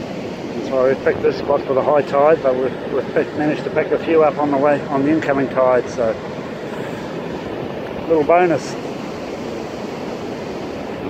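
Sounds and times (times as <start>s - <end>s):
ocean surf breaking on beach: 0.0s - 11.0s
wind: 0.0s - 11.0s.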